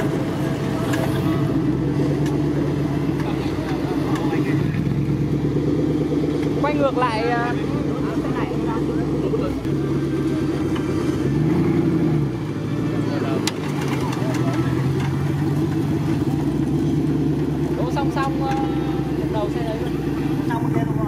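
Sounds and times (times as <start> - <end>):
buggy engine idling and revving: 0.0 - 21.0.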